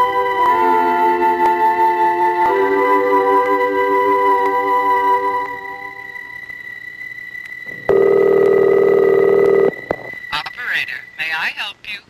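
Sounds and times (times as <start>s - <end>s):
music: 0.0s - 8.2s
faint high whine: 0.0s - 12.0s
telephone ringing tone: 7.7s - 10.5s.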